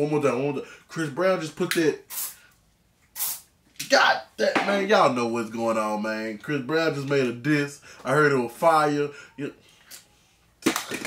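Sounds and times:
aerosol can spraying: 0:02.1 - 0:02.4, 0:03.2 - 0:03.5.

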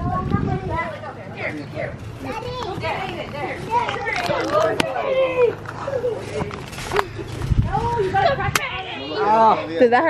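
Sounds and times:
children shouting: 0:02.2 - 0:06.6.

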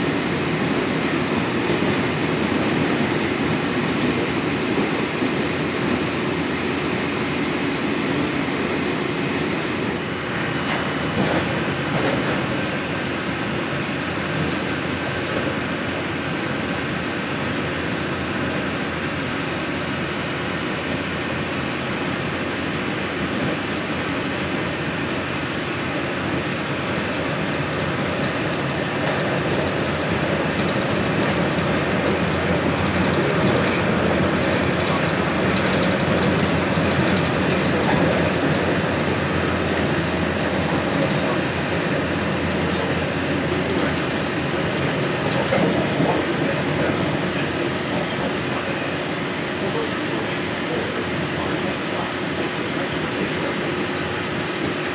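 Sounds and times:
monorail tyres rumbling: 0:00.0 - 0:54.9.

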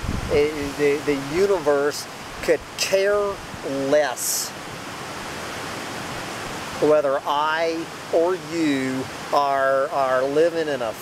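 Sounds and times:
creek water rushing: 0:00.0 - 0:11.0.

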